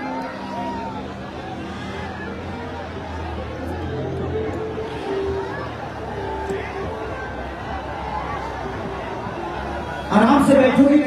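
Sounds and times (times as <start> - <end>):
crowd voices talking and calling: 0.0 - 11.0.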